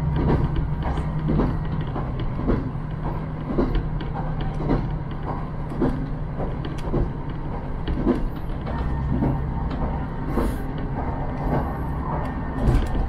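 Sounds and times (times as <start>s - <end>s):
diesel railcar drone: 0.0s - 13.0s
wheels clacking over rail joints: 0.0s - 13.0s.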